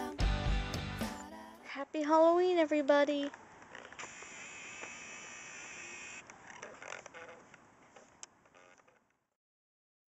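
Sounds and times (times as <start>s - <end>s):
camcorder zoom motor whine: 3.7s - 7.5s.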